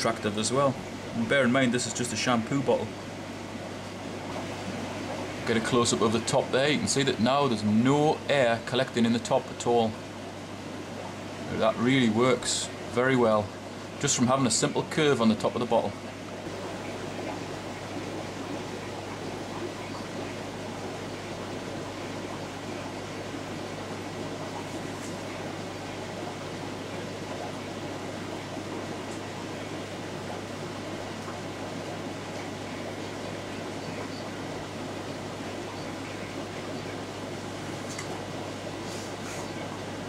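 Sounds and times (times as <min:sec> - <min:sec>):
air bubbling through filter: 0:00.0 - 0:40.0
aquarium air pump humming: 0:00.0 - 0:40.0.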